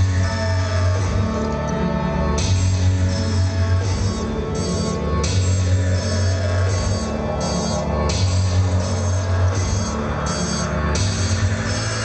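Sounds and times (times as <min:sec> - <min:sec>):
instrumental concert music: 0:00.0 - 0:12.0
loud steady bass line: 0:00.0 - 0:12.0
repeating beat: 0:02.4 - 0:12.0.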